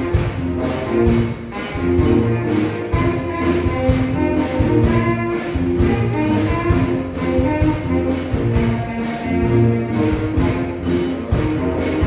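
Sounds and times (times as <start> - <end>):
drums playing steady beat: 0.0 - 12.0
piano: 0.0 - 12.0
saxophone section holding chords: 0.0 - 12.0.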